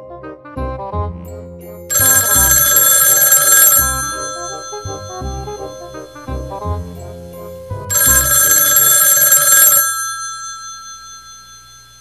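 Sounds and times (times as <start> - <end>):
background music with steady beat: 0.0 - 2.8, 3.8 - 8.4
telephone bell ringing: 1.9 - 6.4, 7.9 - 12.0.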